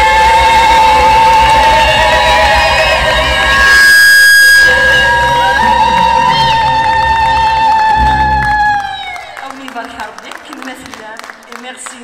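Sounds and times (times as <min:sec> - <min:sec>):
keyboard and bass guitar: 0:00.0 - 0:09.4
loud steady high tone: 0:00.0 - 0:09.4.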